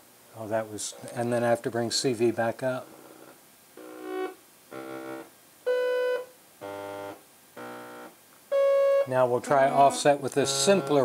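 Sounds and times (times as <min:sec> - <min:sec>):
synthesizer notes: 0:08.5 - 0:11.0.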